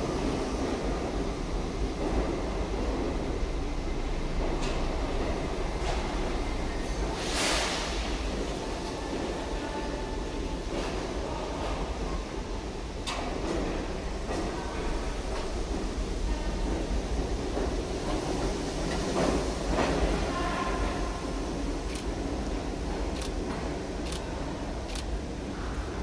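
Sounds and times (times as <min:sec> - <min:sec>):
subway train rumble: 0:00.0 - 0:26.0.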